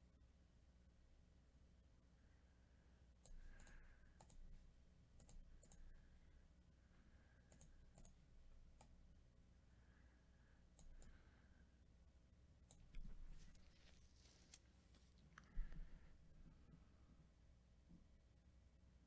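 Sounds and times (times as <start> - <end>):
computer mouse clicks: 3.2 - 4.5, 5.2 - 6.0, 7.5 - 9.0, 10.7 - 11.2, 12.6 - 13.6.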